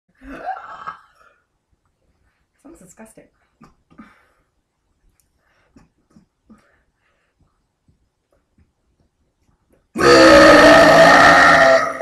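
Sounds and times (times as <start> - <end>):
woman burping loudly: 0.2 - 1.4, 10.0 - 12.0.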